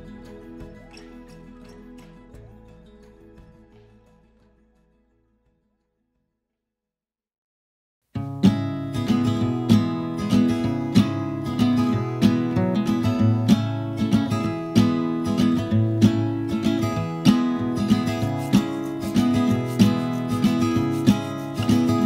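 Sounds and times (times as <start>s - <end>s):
acoustic guitar strumming: 0.0s - 5.4s, 8.2s - 22.0s.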